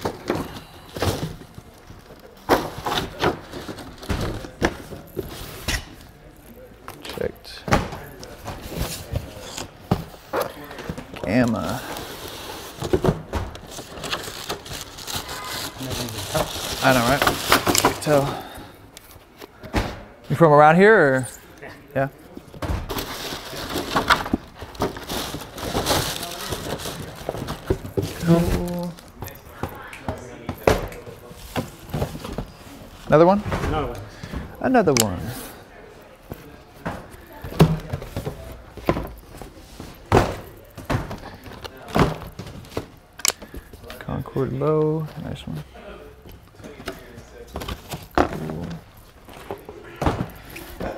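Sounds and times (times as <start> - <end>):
boxes thunking on stone counter: 12.7 - 14.0, 36.8 - 43.5, 47.5 - 50.9
plastic bag crinkling: 13.7 - 17.8, 23.0 - 29.3.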